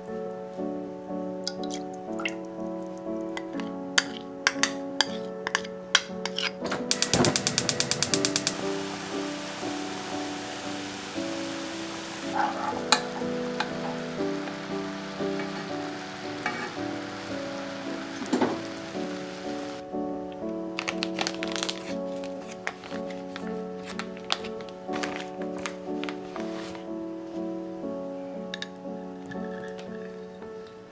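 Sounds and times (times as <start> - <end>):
background music: 0.0 - 30.9
quick clicks: 6.9 - 8.6
sauce bubbling in a frying pan: 6.9 - 19.8.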